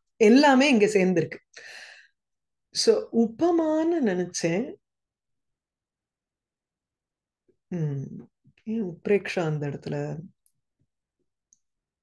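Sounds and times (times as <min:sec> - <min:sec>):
woman speaking: 0:00.2 - 0:01.4, 0:02.8 - 0:04.8, 0:07.7 - 0:10.3.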